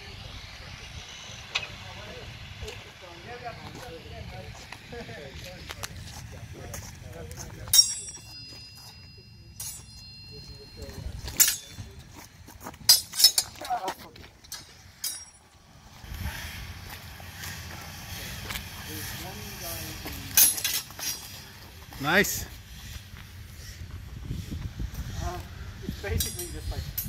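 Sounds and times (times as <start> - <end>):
swords clashing: 7.7 - 8.3, 9.6 - 10.3, 11.4 - 11.8, 12.9 - 13.8.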